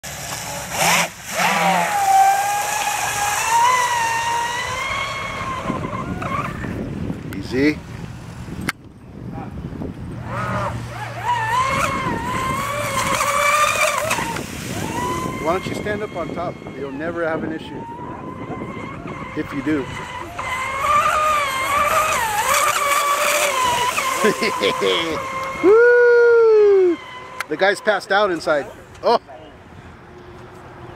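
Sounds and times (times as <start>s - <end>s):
electric motor whine: 0.1s - 7.0s, 10.0s - 28.4s.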